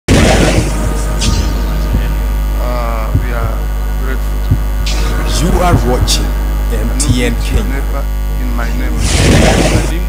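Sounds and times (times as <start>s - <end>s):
electrical mains hum: 0.1s - 10.0s.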